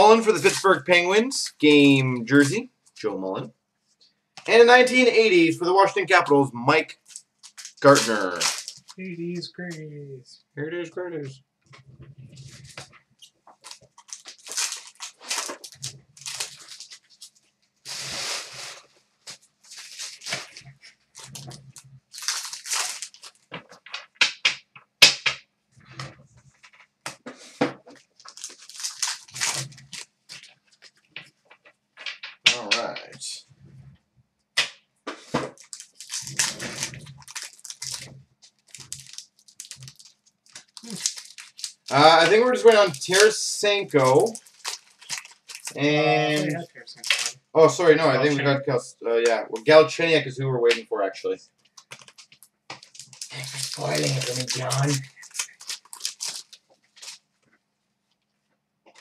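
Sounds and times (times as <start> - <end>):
card packs tearing and rustling: 0.0 - 2.6, 7.0 - 9.0, 13.6 - 17.3, 17.9 - 20.6, 21.2 - 23.5, 27.5 - 30.5, 35.3 - 47.4, 51.8 - 57.2.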